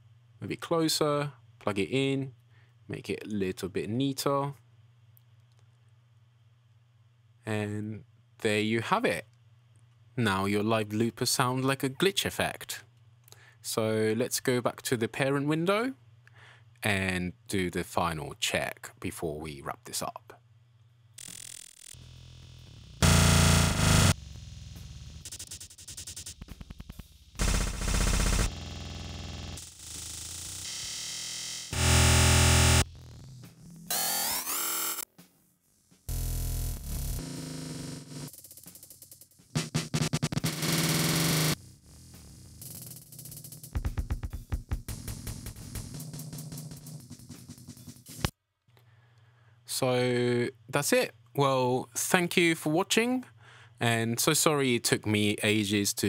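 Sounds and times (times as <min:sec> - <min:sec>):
stuttering glitched drum loop: 0:23.0 - 0:24.2, 0:25.2 - 0:28.8, 0:31.7 - 0:35.0, 0:38.4 - 0:48.3.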